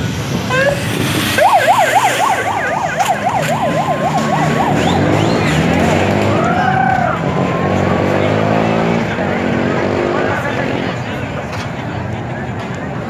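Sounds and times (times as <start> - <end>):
street noise: 0.0 - 13.0
police siren yelping: 0.5 - 7.7.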